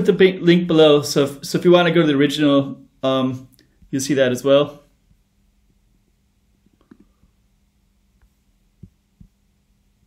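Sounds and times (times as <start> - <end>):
faint steady hum: 0.0 - 10.0
soft low thumps: 8.2 - 9.4.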